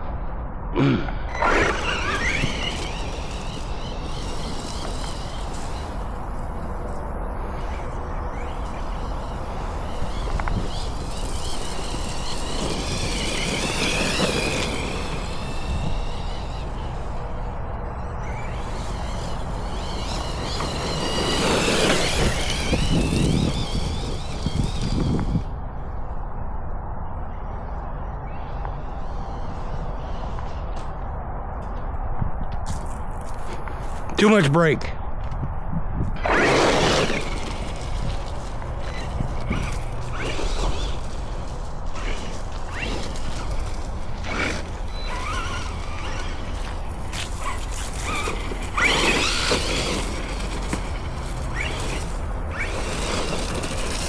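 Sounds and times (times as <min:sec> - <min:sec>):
rc truck motor whining: 0:01.3 - 0:26.0, 0:36.1 - 0:54.0.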